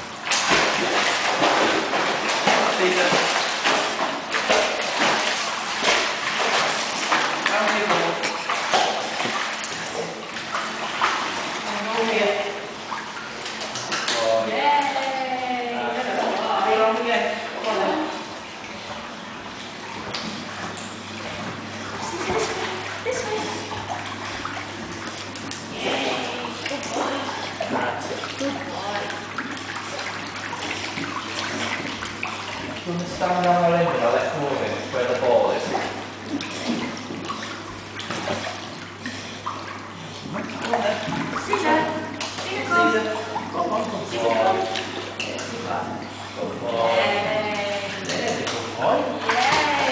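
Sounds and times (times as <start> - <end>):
steady low hum: 0.0 - 49.9
water splashing and sloshing: 0.0 - 49.9.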